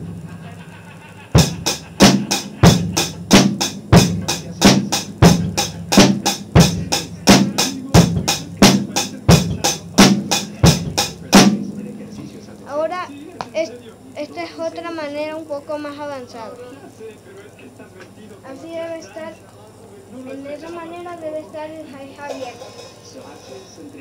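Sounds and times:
hi-hat strikes: 0.0 - 12.8, 22.2 - 24.0.

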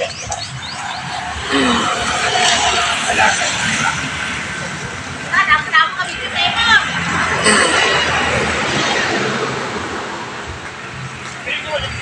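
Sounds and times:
small birds chirping: 0.0 - 2.0
background noise with voices: 0.0 - 12.0.

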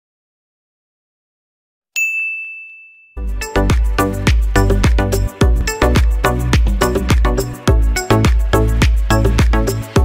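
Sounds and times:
bright ding chime: 2.0 - 3.3
upbeat music with heavy bass: 3.2 - 10.0.

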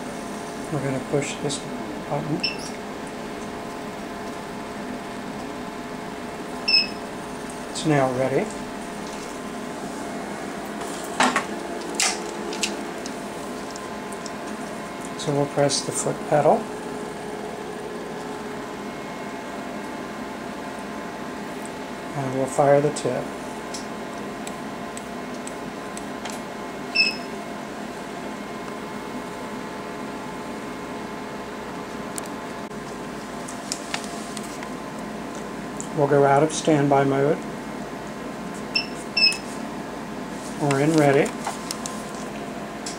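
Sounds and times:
machine humming: 0.0 - 42.9.

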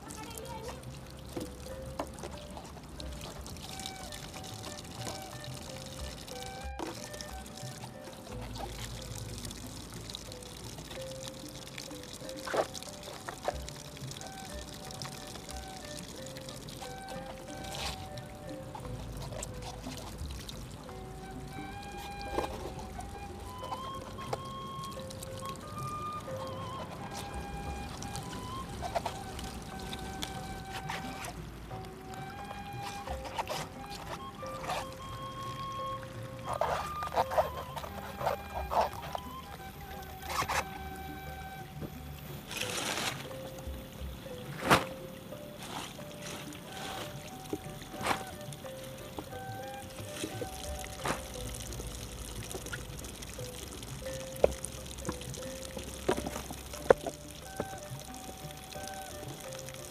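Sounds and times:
slow gentle music: 0.0 - 59.9
water running from spout: 0.0 - 59.9.

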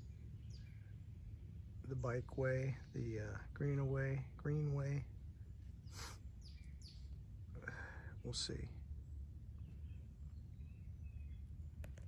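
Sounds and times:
bird chirping: 0.0 - 12.0
faint low outdoor rumble: 0.0 - 12.0.

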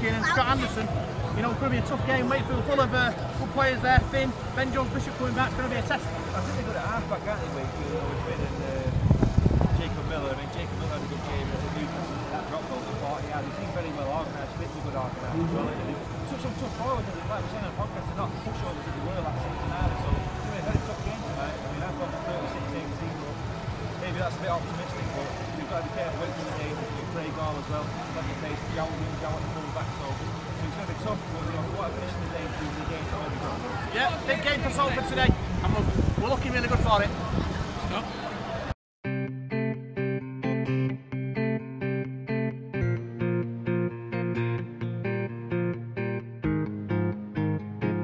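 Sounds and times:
man talking: 0.0 - 8.9, 9.8 - 19.4
loud low thump: 15.3 - 16.8.

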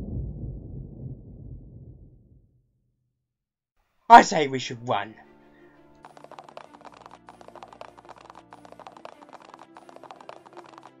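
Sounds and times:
rapid running footsteps: 5.9 - 11.0.

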